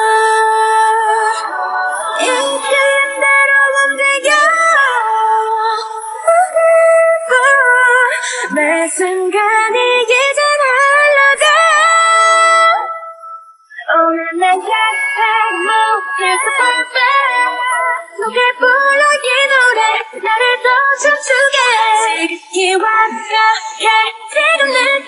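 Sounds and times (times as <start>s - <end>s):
woman singing a cappella: 0.0s - 25.0s.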